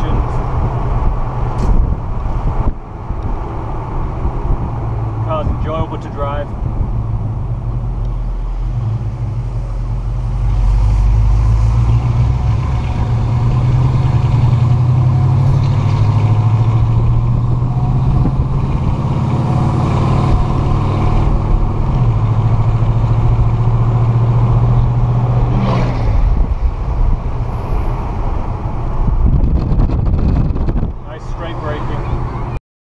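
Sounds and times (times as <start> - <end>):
road noise: 0.0 - 32.6
wind: 0.0 - 32.6
car engine running: 12.4 - 25.5.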